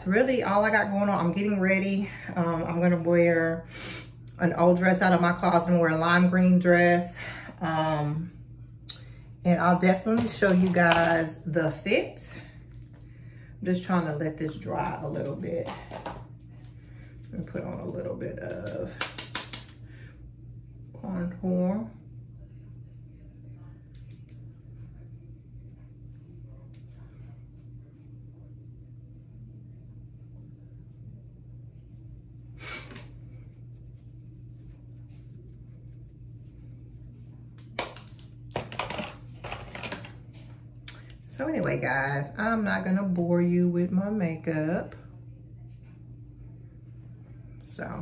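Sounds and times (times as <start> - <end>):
makeup brush scratching powder: 9.9 - 12.2, 13.7 - 19.8, 31.8 - 40.5.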